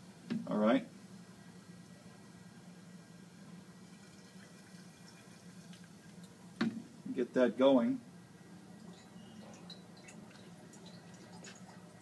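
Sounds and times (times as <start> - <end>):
fume hood hum: 0.0 - 12.0
liquid trickling into flask: 3.8 - 6.5, 8.7 - 12.0.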